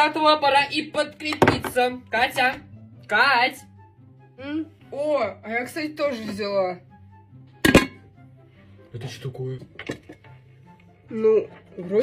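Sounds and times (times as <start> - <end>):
faint background music: 0.0 - 12.0
metal pot knocking on table: 1.3 - 1.9, 7.6 - 8.1.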